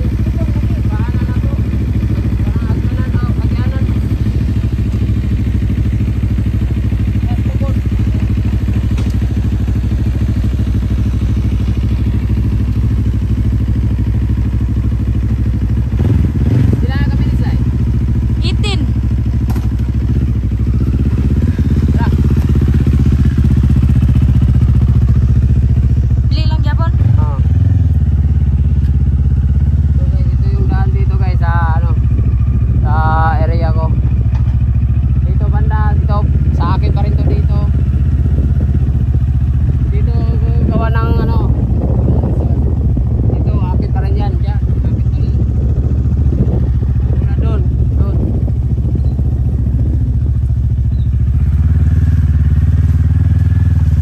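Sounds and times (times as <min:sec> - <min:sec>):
motorcycle engine at low revs: 0:00.0 - 0:54.0.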